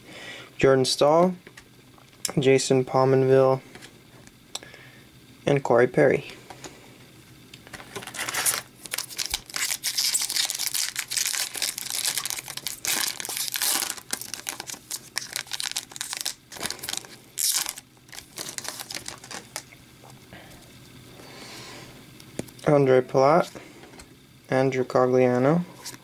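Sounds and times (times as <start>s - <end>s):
foil wrapper crinkling and tearing: 7.8s - 19.7s.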